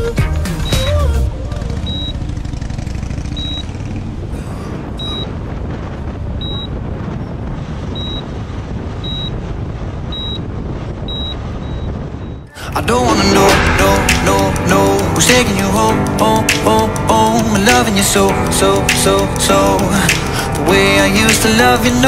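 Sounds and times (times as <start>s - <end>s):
motorcycle engine rumble: 0.0s - 22.0s
wind rush: 1.3s - 22.0s
short high beep: 1.9s - 2.2s, 3.4s - 3.7s, 5.0s - 5.3s, 6.4s - 6.7s, 7.9s - 8.2s, 11.1s - 12.5s.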